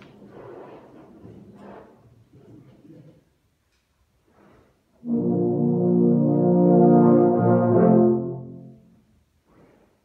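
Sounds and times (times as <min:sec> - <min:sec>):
brass ensemble sustained chord: 0:05.0 - 0:09.0.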